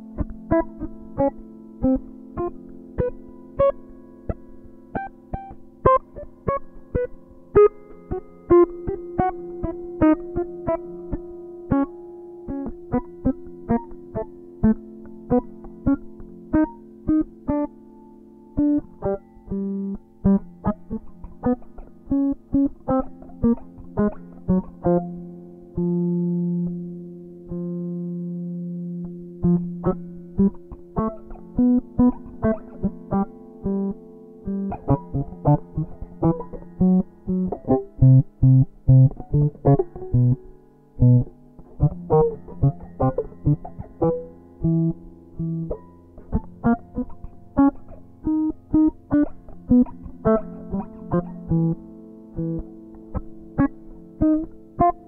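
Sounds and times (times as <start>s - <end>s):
electric guitar fingerstyle notes: 0.0s - 55.0s.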